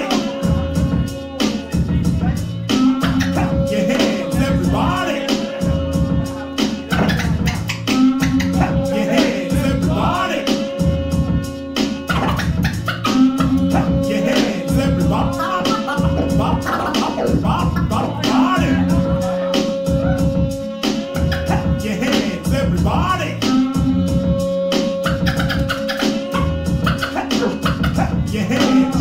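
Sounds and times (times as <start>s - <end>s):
hip-hop music from turntables: 0.0s - 29.0s
record scratching: 2.7s - 10.6s, 12.0s - 23.2s, 25.0s - 29.0s.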